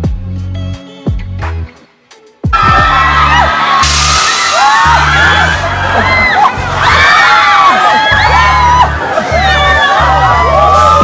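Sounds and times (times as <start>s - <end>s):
background music with bass beat: 0.0s - 11.0s
ride riders screaming: 2.6s - 11.0s.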